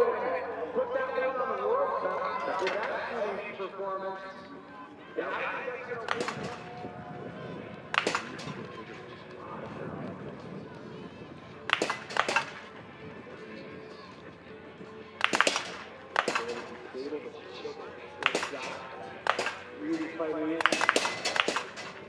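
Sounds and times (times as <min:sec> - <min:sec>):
rifle shots: 0:02.4 - 0:03.3, 0:06.1 - 0:06.8, 0:07.9 - 0:08.7, 0:11.7 - 0:12.8, 0:15.2 - 0:16.9, 0:18.2 - 0:22.0.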